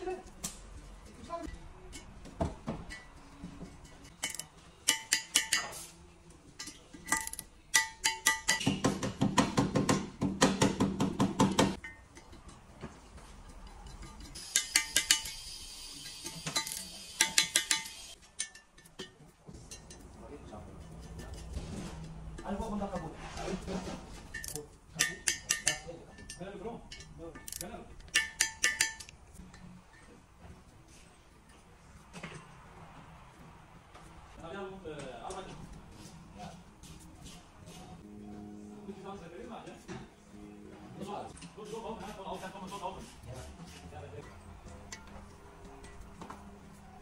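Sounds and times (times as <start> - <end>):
ratchet wrench clicking: 4.2 - 5.6, 7.0 - 8.7, 13.8 - 18.6, 27.0 - 29.2
metallic clinks of tool on metal: 6.6 - 8.7, 13.4 - 15.4, 24.3 - 30.1.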